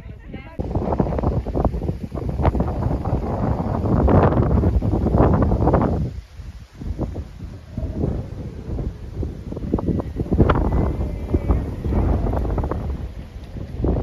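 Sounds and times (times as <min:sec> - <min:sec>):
wind buffeting microphone: 0:00.0 - 0:14.0.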